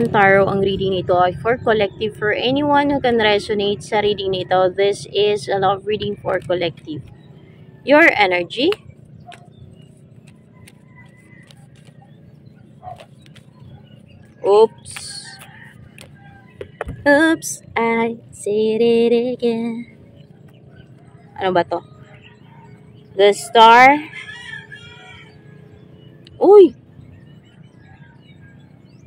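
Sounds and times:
rooster crowing: 15.2s - 17.0s, 23.9s - 25.8s.

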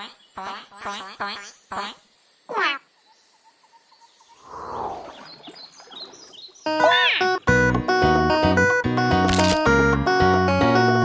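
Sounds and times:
cartoon duck quacking: 0.0s - 2.8s, 6.7s - 7.4s
guitar music: 6.7s - 11.0s.

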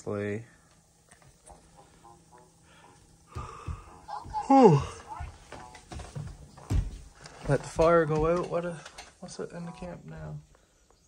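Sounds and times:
faint breathy vocal sounds: 2.6s - 5.3s.

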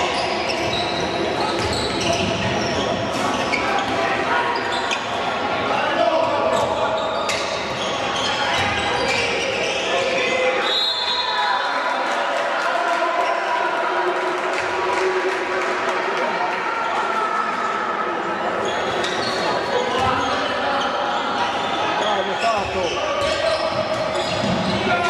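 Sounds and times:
players' voices echoing: 0.0s - 25.0s.

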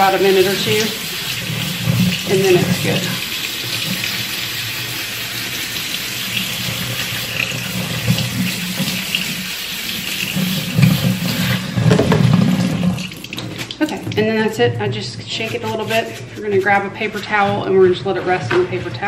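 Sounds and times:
faucet running into metal sink: 0.0s - 14.4s.

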